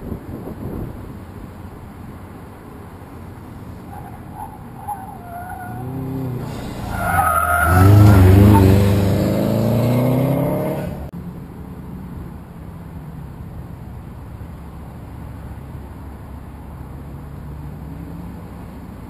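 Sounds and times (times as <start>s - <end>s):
car engine accelerating: 3.4s - 11.1s
tires squealing: 3.6s - 11.1s.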